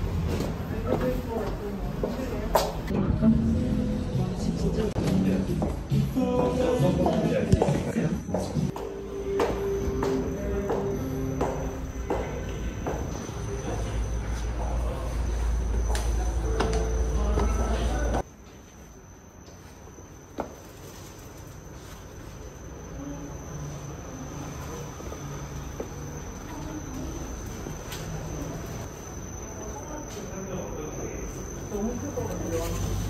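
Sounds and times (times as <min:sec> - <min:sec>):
loud low rumble: 0:02.9 - 0:05.0.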